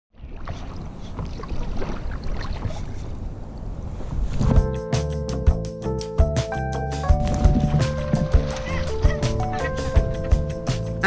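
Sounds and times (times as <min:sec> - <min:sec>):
water splashing and lapping: 0:00.1 - 0:04.7, 0:07.0 - 0:11.0.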